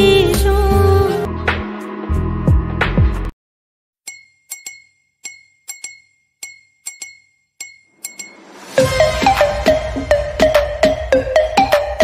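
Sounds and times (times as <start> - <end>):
glass-like clinks: 4.1 - 8.6.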